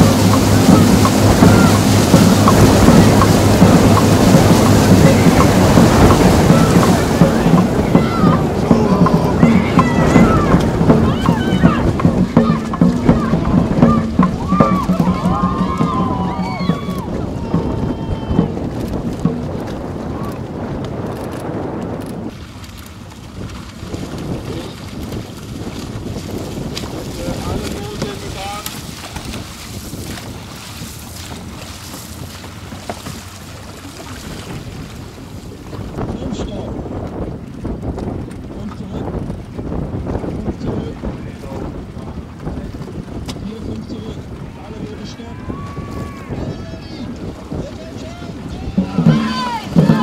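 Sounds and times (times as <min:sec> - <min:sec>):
distant shouting voices: 0:00.0 - 0:18.7, 0:44.6 - 0:50.0
wind buffeting microphone: 0:00.0 - 0:50.0.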